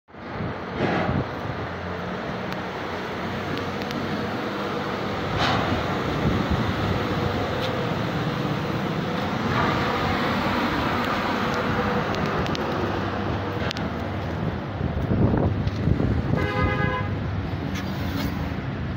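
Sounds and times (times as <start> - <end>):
vehicle engines and road noise: 0.1 - 18.9.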